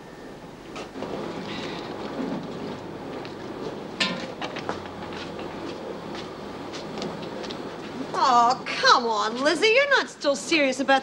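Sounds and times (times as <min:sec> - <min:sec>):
laundry machines running: 0:00.0 - 0:11.0.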